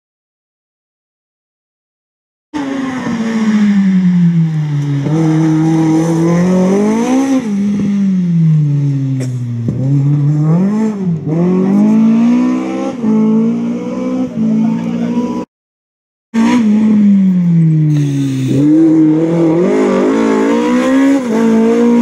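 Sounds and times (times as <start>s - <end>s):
car engine revving: 2.6s - 15.5s, 16.4s - 22.0s.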